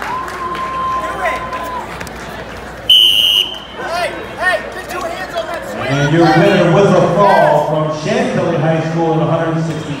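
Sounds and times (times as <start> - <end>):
crowd shouting and chatter: 0.0 - 10.0.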